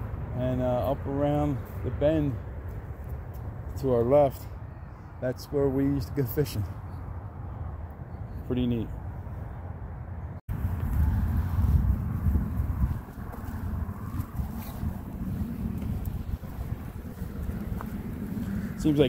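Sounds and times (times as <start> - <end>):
gusty wind on microphone: 9.1 - 19.0.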